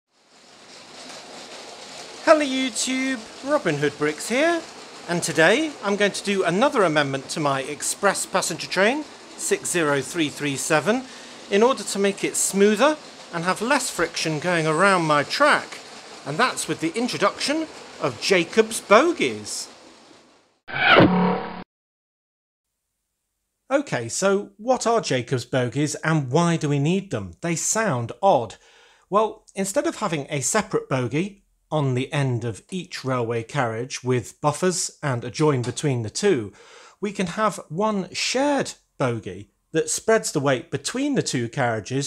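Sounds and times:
steady hiss: 0:00.2 - 0:20.6, 0:27.4 - 0:42.0.

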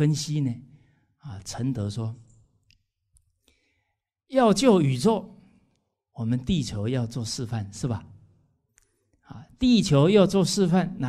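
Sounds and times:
man speaking: 0:00.0 - 0:00.6, 0:01.2 - 0:02.3, 0:04.3 - 0:05.3, 0:06.2 - 0:08.2, 0:09.3 - 0:11.0.

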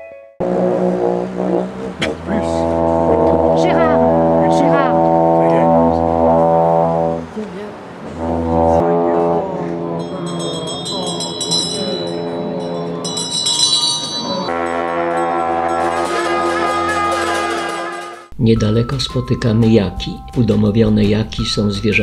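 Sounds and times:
ritual horns droning: 0:00.4 - 0:18.4.

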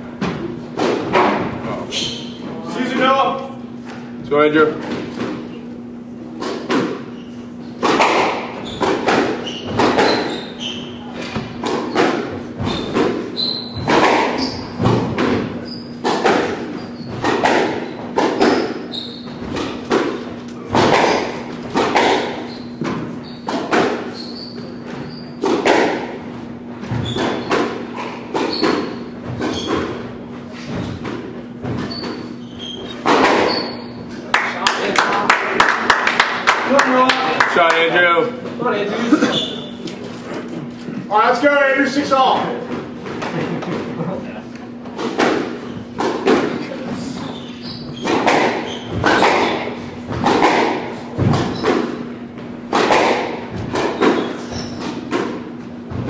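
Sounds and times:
squash ball hit by rackets: 0:00.2 - 0:01.6, 0:06.4 - 0:07.1, 0:07.8 - 0:33.8, 0:44.8 - 0:46.6, 0:47.2 - 0:56.0.

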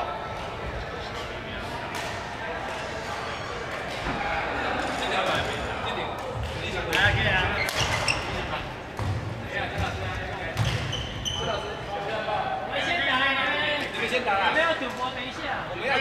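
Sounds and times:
shoes squeaking: 0:06.6 - 0:08.8, 0:09.7 - 0:11.9.

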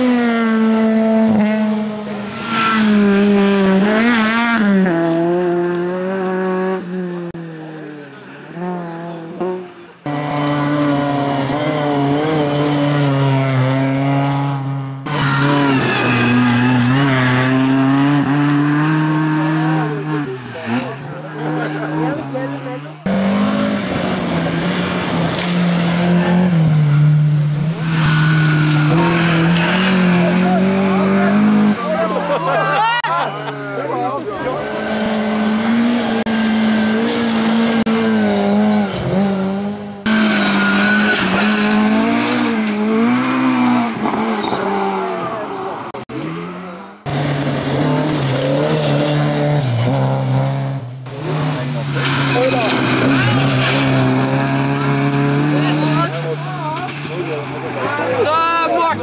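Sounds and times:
rally car engines revving: 0:00.0 - 0:59.0
tyres on gravel: 0:36.7 - 0:46.3, 0:47.0 - 0:59.0.

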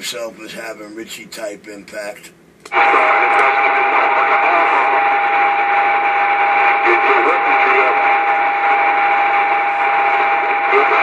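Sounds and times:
radio static hiss: 0:02.2 - 0:11.0
faint voices over radio: 0:02.7 - 0:11.0
steady whistle tone: 0:02.8 - 0:11.0.

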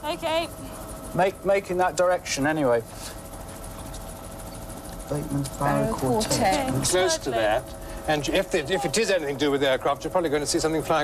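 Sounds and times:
faint steady hum: 0:00.0 - 0:11.0
helicopter engine and rotor drone: 0:00.0 - 0:11.0.

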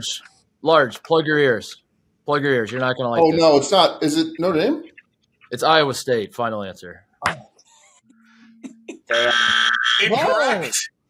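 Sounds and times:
harsh wrong-answer buzzer: 0:09.1 - 0:10.8
voices crying out: 0:09.1 - 0:10.9.

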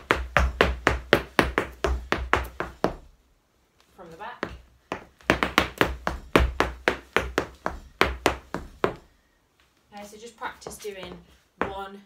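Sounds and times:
hard shoes tapping on floor mat: 0:00.0 - 0:03.1, 0:03.8 - 0:09.1, 0:10.6 - 0:11.9.

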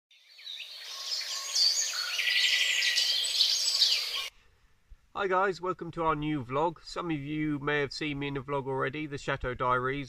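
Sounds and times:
birds chirping and trilling: 0:00.1 - 0:04.4.

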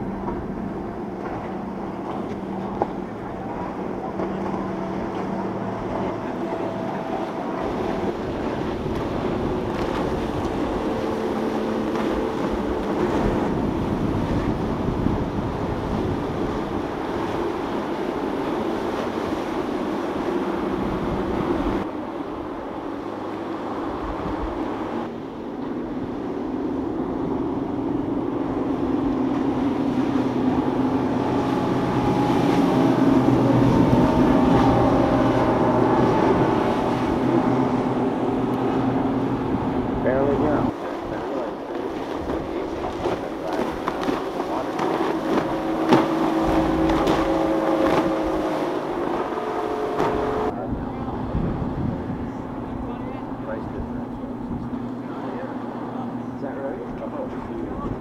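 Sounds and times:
outboard boat engines at speed: 0:00.0 - 0:58.0.

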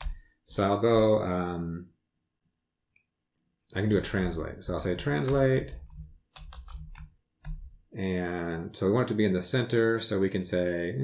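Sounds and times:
computer keyboard typing: 0:04.9 - 0:07.8.

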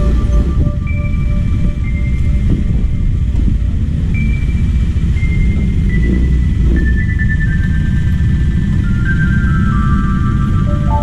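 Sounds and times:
motor scooter rumbling: 0:00.0 - 0:11.0
slow melody of high notes: 0:00.0 - 0:11.0.

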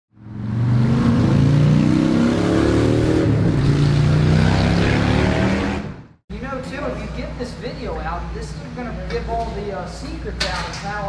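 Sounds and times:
motorcycle engine accelerating: 0:00.2 - 0:06.2.

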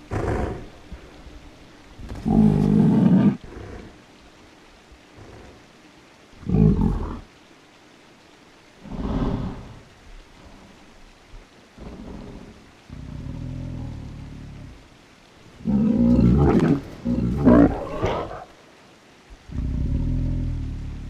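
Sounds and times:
creature growling: 0:02.1 - 0:04.0, 0:11.8 - 0:14.8, 0:15.6 - 0:18.5, 0:19.5 - 0:21.0.

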